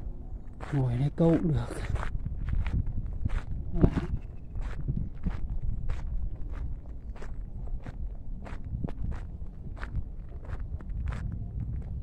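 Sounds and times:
low rumble: 1.9s - 12.0s.

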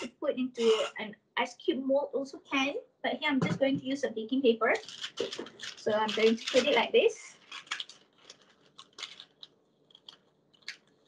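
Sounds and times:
baking paper crinkling: 4.7s - 11.0s.

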